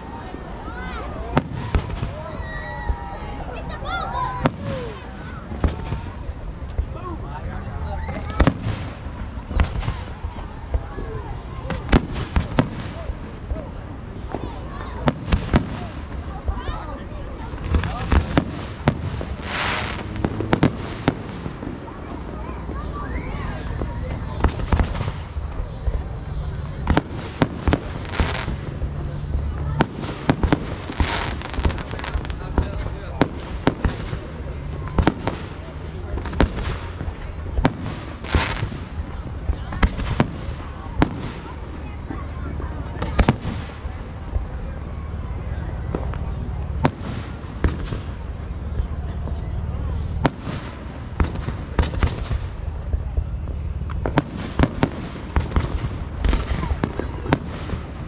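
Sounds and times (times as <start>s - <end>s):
fireworks bangs and pops: 0.0s - 58.0s
fireworks crackling hiss: 0.0s - 58.0s.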